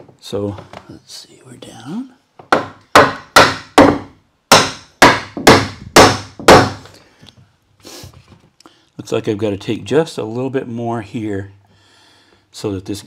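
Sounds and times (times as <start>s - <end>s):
hammer knocking wooden board: 2.4s - 6.8s.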